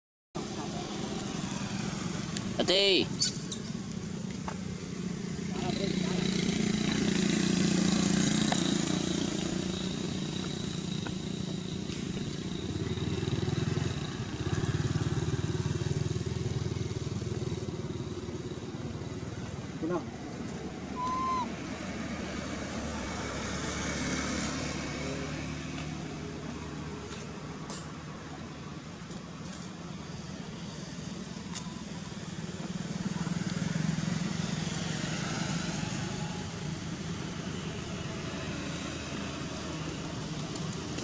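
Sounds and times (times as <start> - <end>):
vehicle engines passing: 0.4 - 41.0
short chirp: 21.0 - 21.5.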